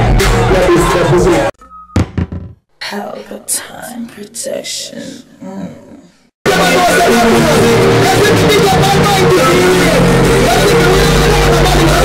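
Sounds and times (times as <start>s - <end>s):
sharp knocks: 2.0s - 2.6s.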